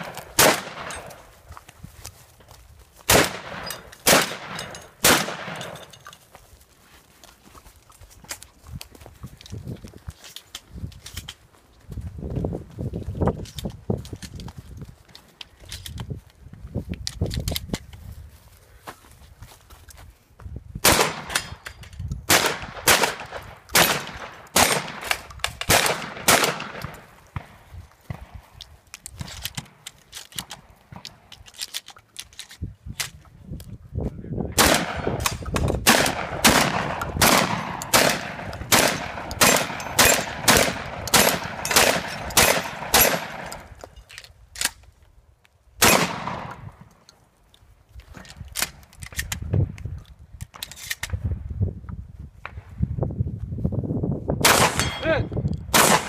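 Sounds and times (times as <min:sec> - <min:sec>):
shotgun shots: 0:00.0 - 0:01.2, 0:03.1 - 0:05.9, 0:20.8 - 0:21.6, 0:22.3 - 0:28.4, 0:34.6 - 0:43.7, 0:45.8 - 0:46.7, 0:54.4 - 0:56.0
gun handling clicks: 0:00.0 - 0:06.4, 0:07.9 - 0:11.4, 0:13.3 - 0:18.0, 0:20.9 - 0:27.1, 0:28.1 - 0:33.7, 0:34.6 - 0:51.2.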